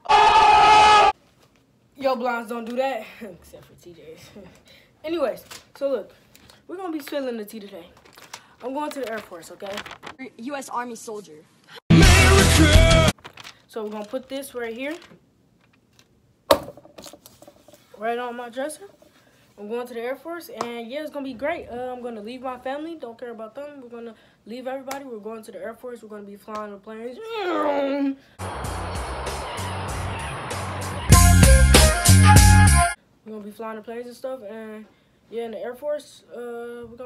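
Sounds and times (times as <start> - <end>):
girl screaming: 0.0 - 1.2, 27.2 - 28.2
handling noise with clicks: 13.2 - 16.2.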